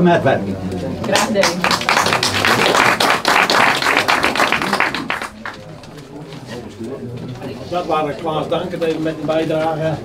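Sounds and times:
audience applause: 1.1s - 5.6s.

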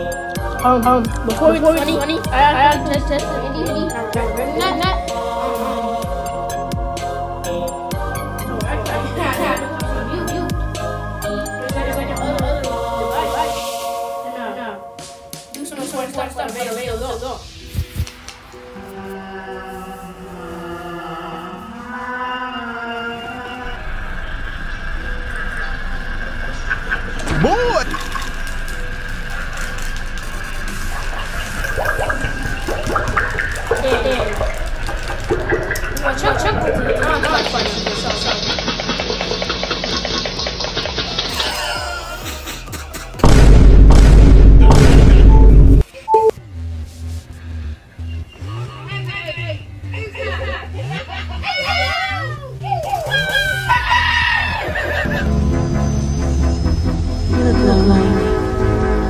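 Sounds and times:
background music: 0.0s - 59.0s.

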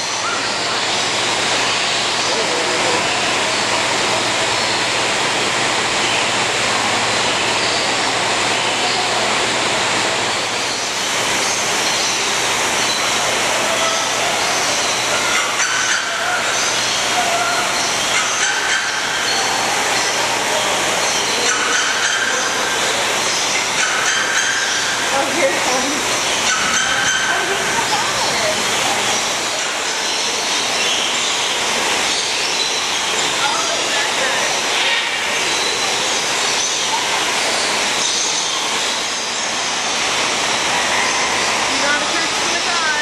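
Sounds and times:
bird calls: 10.2s - 43.0s.

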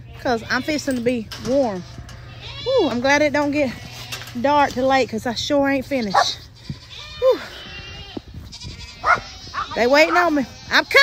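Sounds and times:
farm animal call: 0.0s - 4.8s, 5.8s - 11.0s.

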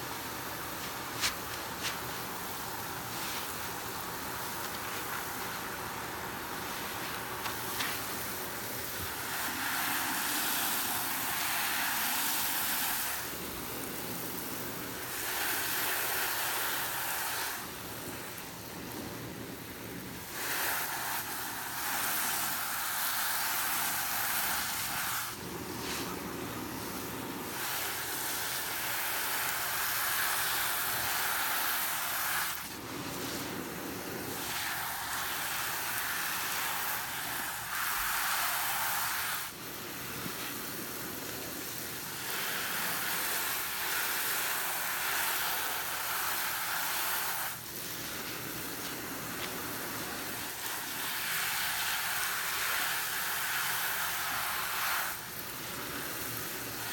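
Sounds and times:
tap water running over sponge: 0.0s - 56.9s.

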